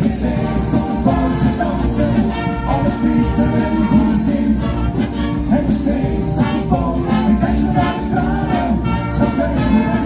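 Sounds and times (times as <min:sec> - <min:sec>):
percussion beat: 0:00.0 - 0:10.0
trumpets: 0:00.2 - 0:10.0.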